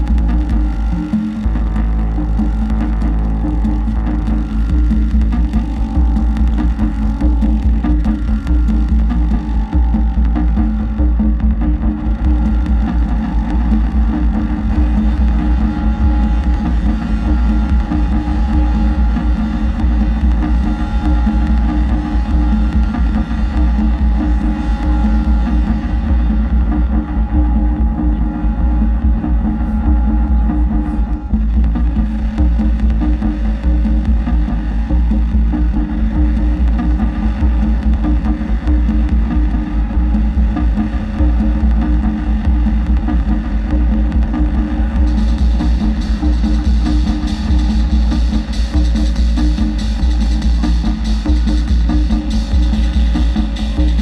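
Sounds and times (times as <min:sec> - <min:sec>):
electronic noise music drone: 0:00.0 - 0:54.0.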